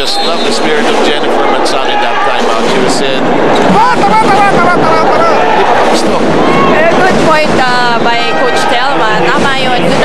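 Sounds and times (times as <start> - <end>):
arena crowd noise: 0.0 - 10.0
high-pitched voices shouting and cheering: 3.6 - 5.8.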